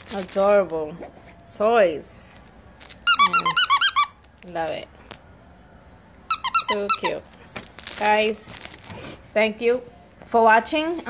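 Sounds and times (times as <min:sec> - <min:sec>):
dog toy squeaking: 0:02.9 - 0:04.2, 0:06.3 - 0:07.4.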